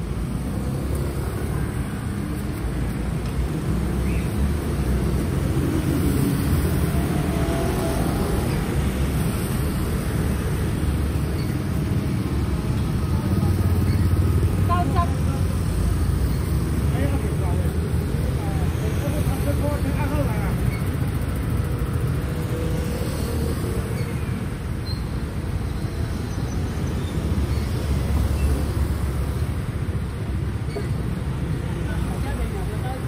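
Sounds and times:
street traffic rumbling: 0.0s - 33.0s.

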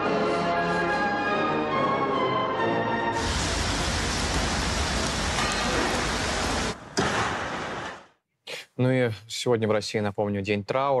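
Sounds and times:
rain-like rushing noise: 3.2s - 6.8s.

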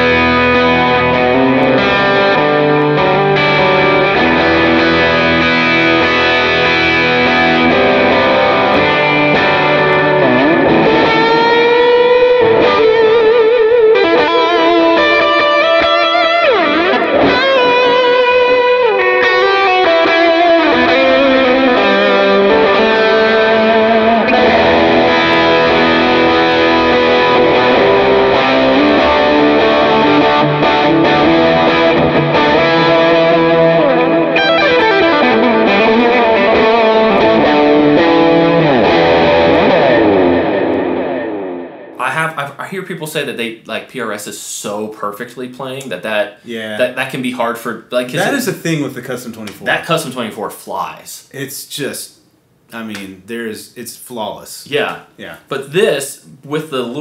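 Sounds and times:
electric guitar lead with bent notes: 0.0s - 42.0s.

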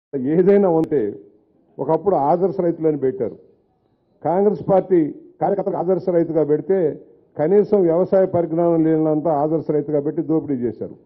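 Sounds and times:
man speaking into a microphone: 0.1s - 3.6s, 4.2s - 11.0s.

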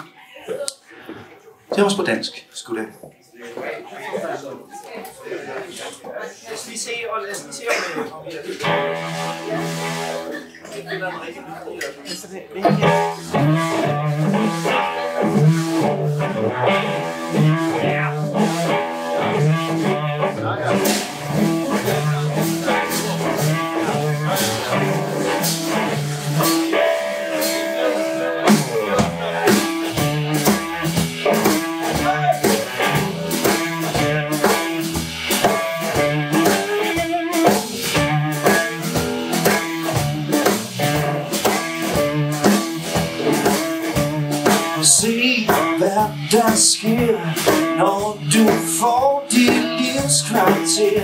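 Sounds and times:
electric guitar with bent notes: 8.4s - 51.0s
drum kit beat: 8.5s - 11.0s, 12.6s - 51.0s
bass guitar: 8.5s - 11.4s, 12.0s - 51.0s.

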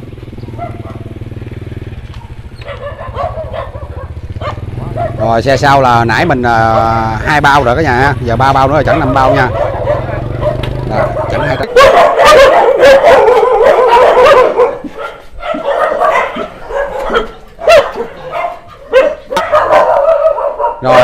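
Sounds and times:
motorbike engine running: 0.0s - 20.5s
dogs barking and yelping: 0.3s - 21.0s.

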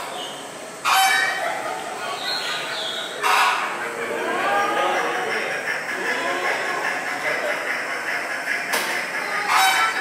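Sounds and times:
birds calling: 0.0s - 10.0s
loud bird call: 0.1s - 7.5s.

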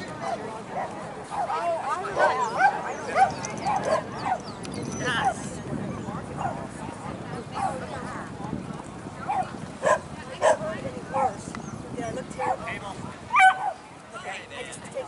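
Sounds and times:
dog barking: 0.2s - 4.4s, 9.2s - 11.4s, 13.3s - 13.8s.

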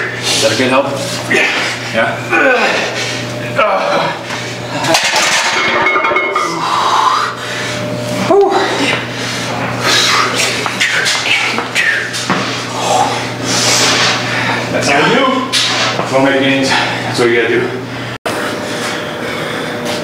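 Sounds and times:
man grunting and breathing hard: 1.3s - 4.7s, 6.5s - 13.7s.

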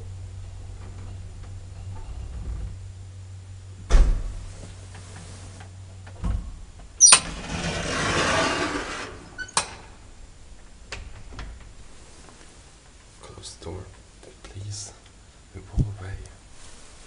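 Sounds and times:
elevator motor humming: 0.0s - 14.2s
elevator door sliding: 7.0s - 10.2s.

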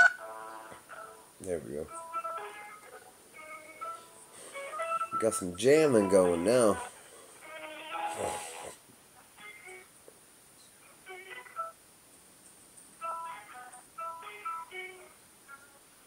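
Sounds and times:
hold music from phone speaker: 0.0s - 1.3s, 1.9s - 8.8s, 13.0s - 15.8s.

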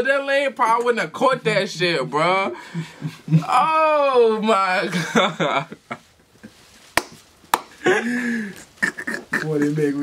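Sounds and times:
people laughing: 4.9s - 6.1s, 7.8s - 10.0s
sharp slaps: 6.9s - 7.8s.

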